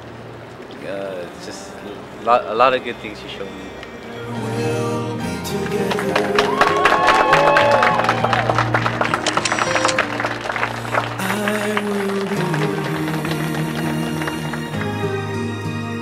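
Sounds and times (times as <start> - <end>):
soft background music: 0.8 - 6.8
guests applauding: 5.4 - 16.0.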